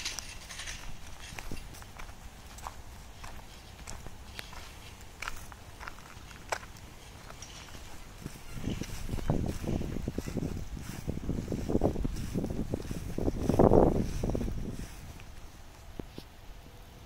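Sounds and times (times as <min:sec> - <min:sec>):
footsteps on paved path: 0:00.0 - 0:16.4
faint outdoor rumble: 0:00.0 - 0:17.0.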